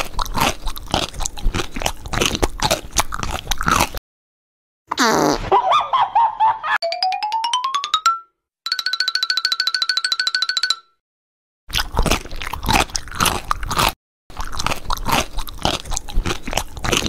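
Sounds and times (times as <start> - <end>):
potato chips crunching: 0.0 - 4.0, 11.7 - 17.0.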